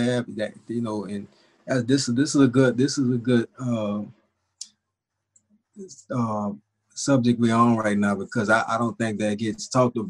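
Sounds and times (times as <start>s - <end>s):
person speaking: 0.0s - 4.1s, 5.8s - 10.0s.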